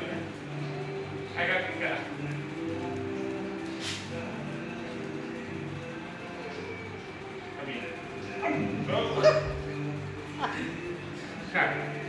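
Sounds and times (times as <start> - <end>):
dog barking: 8.5 - 9.7.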